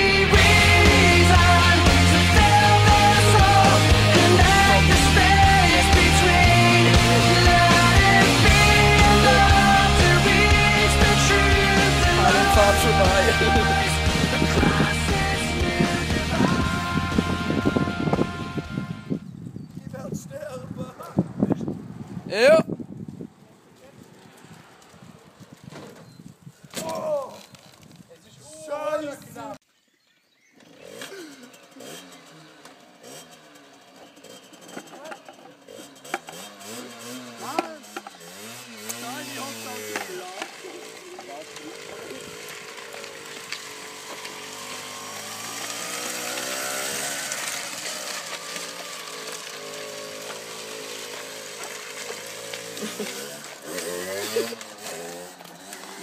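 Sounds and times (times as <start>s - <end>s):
motorcycle engine revving: 0.0s - 19.3s, 30.5s - 56.0s
wind on microphone: 15.6s - 24.3s
bike rattling over asphalt: 22.8s - 28.2s, 30.6s - 56.0s.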